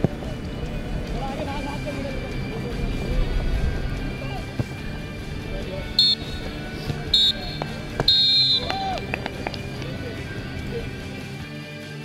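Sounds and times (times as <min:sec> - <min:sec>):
referee's whistle blasts: 0:05.9 - 0:09.0.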